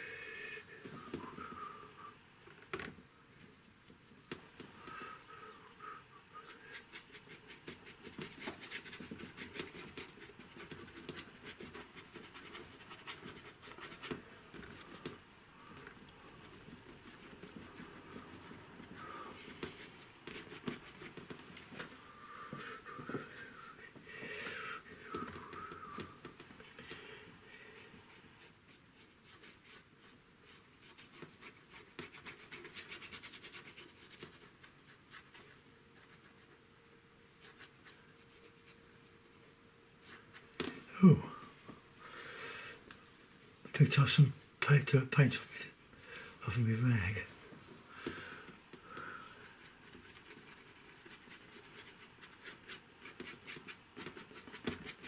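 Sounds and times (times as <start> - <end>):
paintbrush scratchy strokes on board: 6.4 - 21.5, 27.7 - 36.6, 37.4 - 39.4, 49.3 - 55.0.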